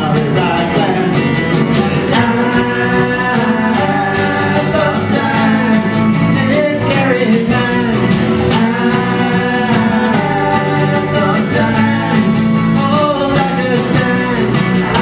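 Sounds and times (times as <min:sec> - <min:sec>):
acoustic guitars strumming: 0:00.0 - 0:15.0
men singing: 0:00.0 - 0:15.0.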